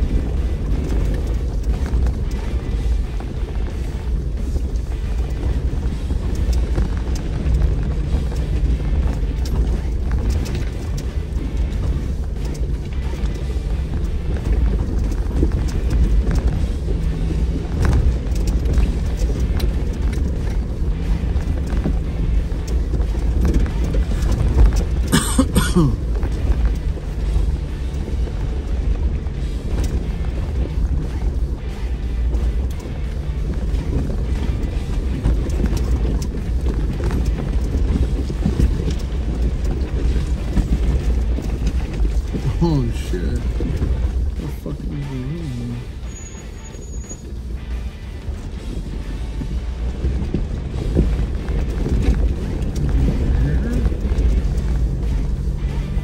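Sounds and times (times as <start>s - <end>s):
rocks knocking under tyres: 0.0s - 42.6s, 47.2s - 56.0s
vehicle engine drone: 0.0s - 56.0s
short rising squeak: 46.0s - 47.3s.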